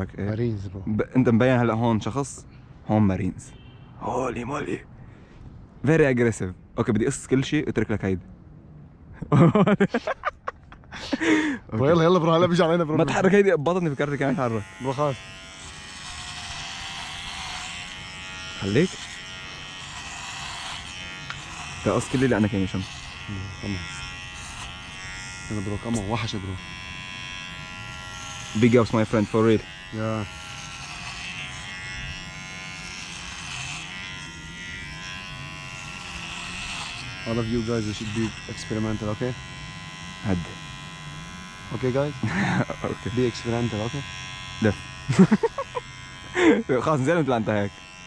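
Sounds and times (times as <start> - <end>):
electric hair clipper buzzing: 13.7 - 48.0.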